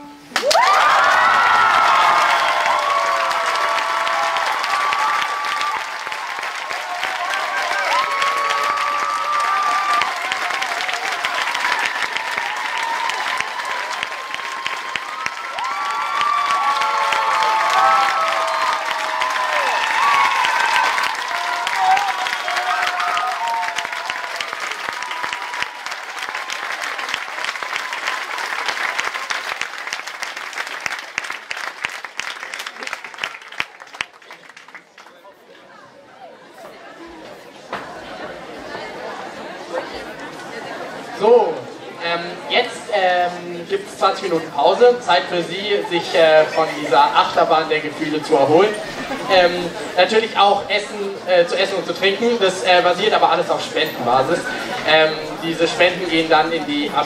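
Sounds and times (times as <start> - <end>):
cheering voices: 0.0 - 57.0
audience applauding: 0.3 - 35.8.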